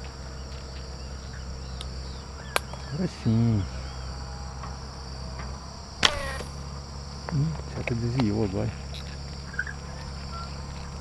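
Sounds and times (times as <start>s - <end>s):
insects buzzing: 0.0s - 11.0s
falling whine of arrow: 6.0s - 6.6s.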